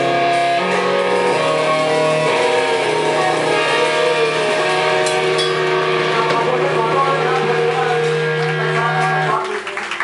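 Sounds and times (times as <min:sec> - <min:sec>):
drum and cymbal hits: 0:00.0 - 0:08.9
bass guitar: 0:00.0 - 0:09.5
electric guitar chords: 0:00.0 - 0:09.6.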